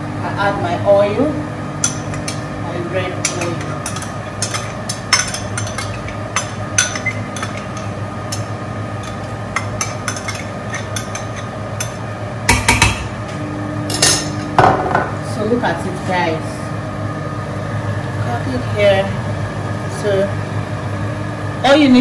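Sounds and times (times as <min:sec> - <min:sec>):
steady low hum: 0:00.0 - 0:22.0
metal spoon clinking on pot: 0:01.8 - 0:02.4, 0:03.2 - 0:12.9.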